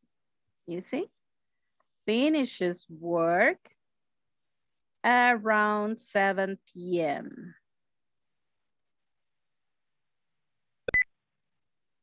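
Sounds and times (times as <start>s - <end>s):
short electronic beep: 10.9s - 11.1s.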